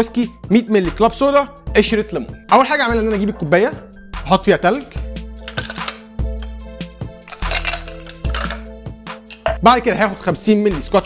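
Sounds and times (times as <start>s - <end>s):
background music: 0.0s - 11.0s
ice cubes clinking into glass: 5.5s - 6.1s, 7.2s - 8.7s, 9.3s - 9.6s.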